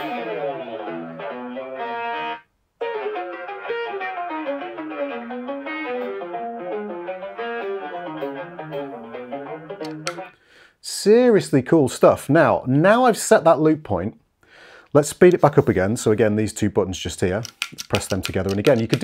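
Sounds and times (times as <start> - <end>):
electric guitar muted legato line: 0.0 - 10.3.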